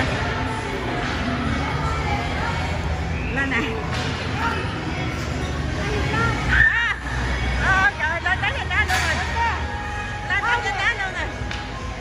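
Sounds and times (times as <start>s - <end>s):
indoor crowd hum and babble: 0.0s - 12.0s.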